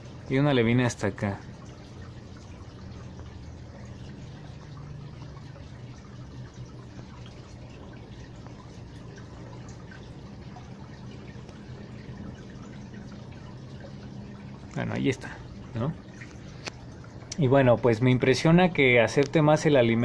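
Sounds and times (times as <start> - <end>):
aquarium equipment humming: 0.0 - 20.0
water trickling and dripping: 0.0 - 20.0.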